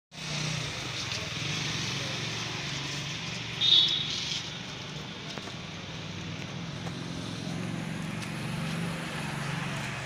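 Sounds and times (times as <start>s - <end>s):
steady traffic noise: 0.1s - 10.0s.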